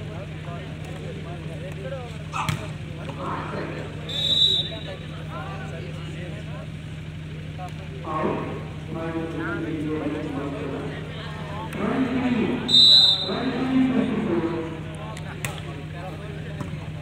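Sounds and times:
spectator chatter: 0.0s - 17.0s
steady low hum: 0.0s - 17.0s
volleyball being hit: 2.4s - 3.1s
referee's whistle: 4.0s - 5.1s, 12.7s - 13.6s.

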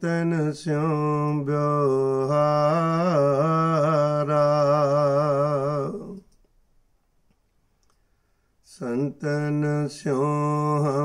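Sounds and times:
man singing a hymn: 0.0s - 6.2s, 8.7s - 11.0s
faint clicks: 6.1s - 6.6s, 7.2s - 8.1s.

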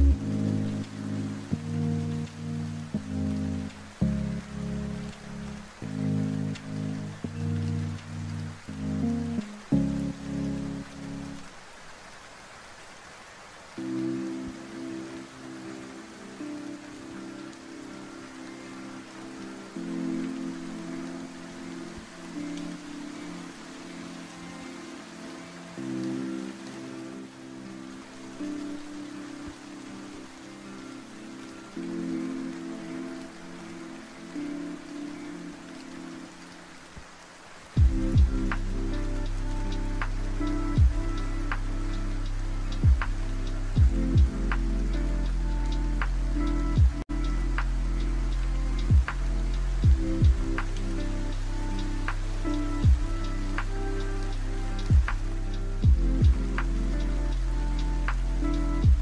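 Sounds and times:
lofi music chords: 0.0s - 11.6s, 13.7s - 59.0s
steady rain: 0.0s - 59.0s
beat with deep bass: 37.8s - 59.0s.

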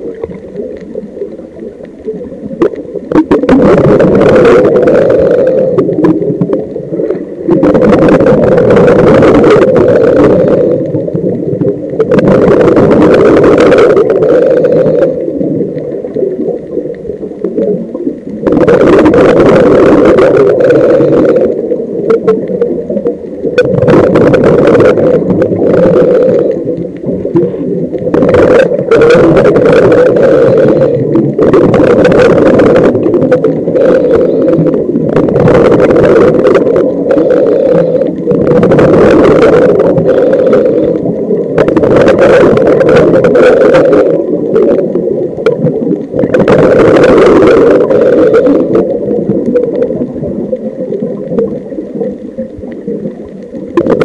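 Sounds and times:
underwater low rumble: 0.0s - 54.0s
underwater rushing bubbling bursts: 0.0s - 54.0s.

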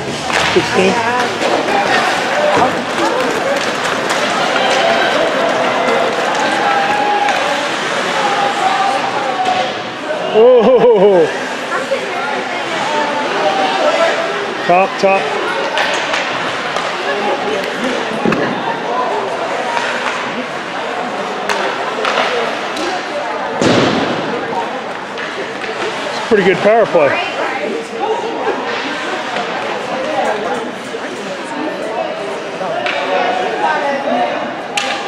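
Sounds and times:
spectators talking: 0.0s - 35.0s.

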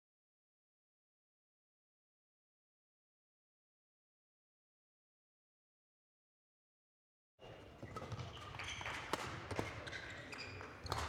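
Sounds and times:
shoes squeaking on court floor: 7.4s - 11.0s.

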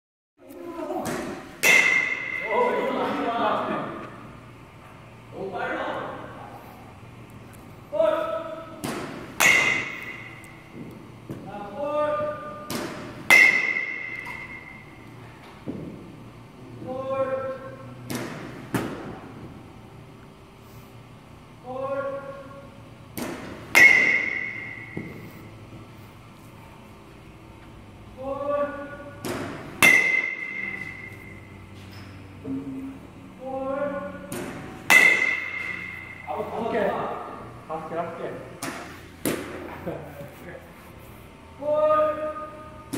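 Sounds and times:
bat striking ball: 1.0s - 2.7s, 8.8s - 11.5s, 12.4s - 16.0s, 18.0s - 19.3s, 23.1s - 25.3s, 29.2s - 31.4s, 34.3s - 36.4s, 38.6s - 39.7s
ringing metallic ping: 1.6s - 2.5s, 9.4s - 10.4s, 13.3s - 15.0s, 29.8s - 31.5s, 34.9s - 36.3s.

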